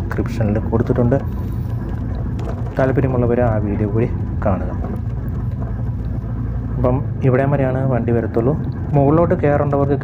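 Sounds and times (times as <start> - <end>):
man talking: 0.0 - 1.3, 2.7 - 5.0, 6.8 - 10.0
motorcycle engine droning: 0.0 - 10.0.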